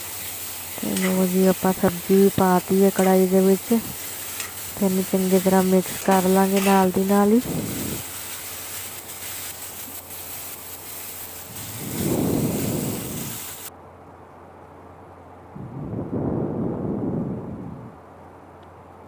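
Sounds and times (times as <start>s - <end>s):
vegetables sizzling in oil: 0.0s - 13.7s
low rumbling swells: 15.5s - 18.0s.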